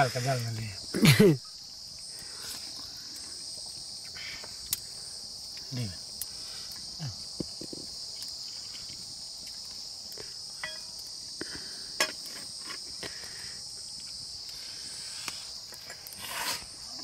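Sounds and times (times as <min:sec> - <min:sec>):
high-pitched insect chorus: 0:00.0 - 0:17.0.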